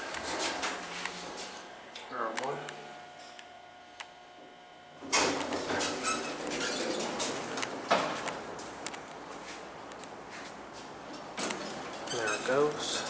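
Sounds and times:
elevator doors sliding: 5.0s - 8.9s.

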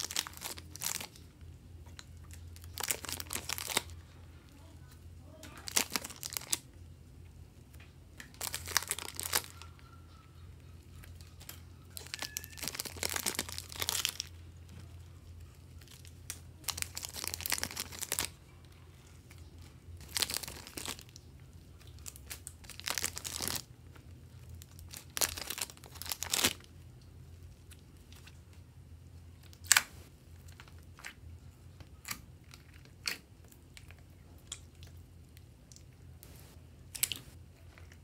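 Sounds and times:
plastic packaging crinkling: 0.0s - 1.3s, 2.2s - 4.1s, 5.5s - 6.6s, 8.2s - 9.8s, 11.1s - 14.9s, 15.6s - 18.4s, 20.0s - 21.2s, 21.8s - 23.7s, 24.4s - 26.7s
steady low hum: 0.0s - 38.0s.

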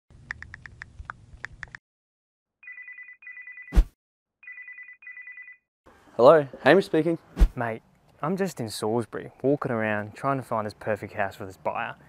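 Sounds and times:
telephone ringing: 2.6s - 3.7s, 4.4s - 5.7s.

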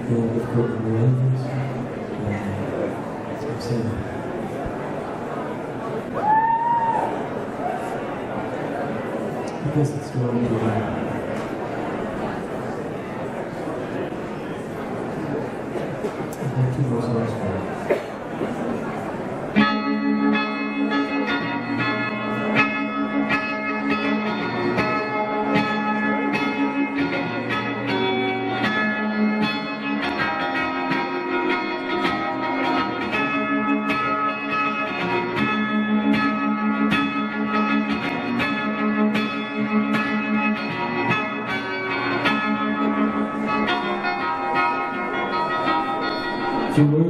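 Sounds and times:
acoustic guitar plucked notes: 19.4s - 47.0s.

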